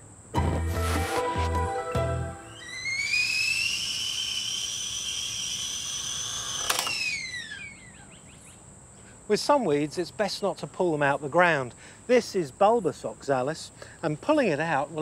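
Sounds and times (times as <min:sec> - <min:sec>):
stovetop kettle whistling: 0:02.3 - 0:07.9.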